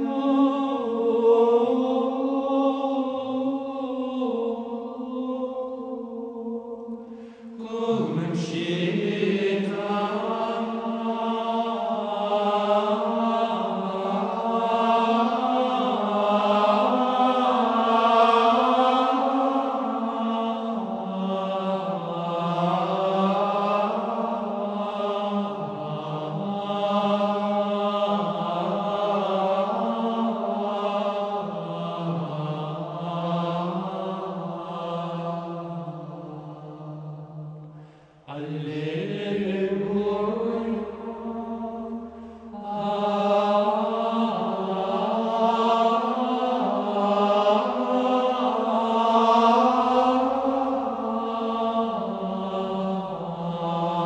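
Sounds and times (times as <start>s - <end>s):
voices chanting slow melody: 0.0s - 54.0s.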